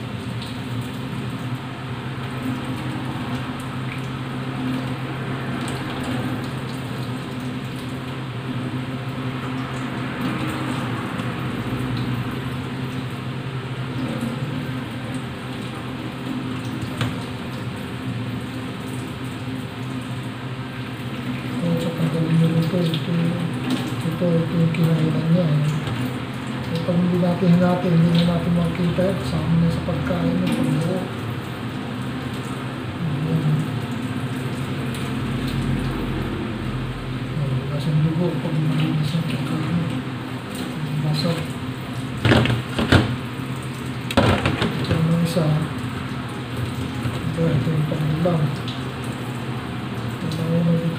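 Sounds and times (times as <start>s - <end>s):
squid rinsed by hand: 0.0s - 50.9s
tap running into steel sink: 16.9s - 17.3s, 42.2s - 43.2s, 44.1s - 45.1s.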